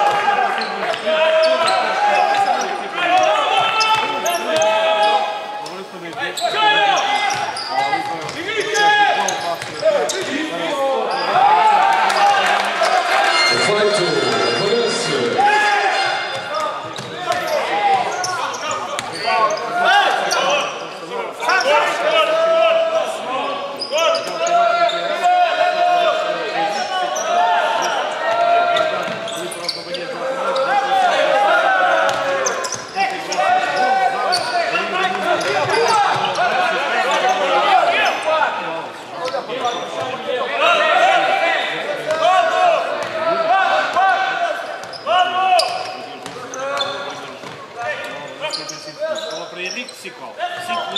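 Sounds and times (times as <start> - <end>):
players calling out: 0.0 - 50.9
basketball bouncing on court: 9.5 - 10.2, 32.1 - 32.9.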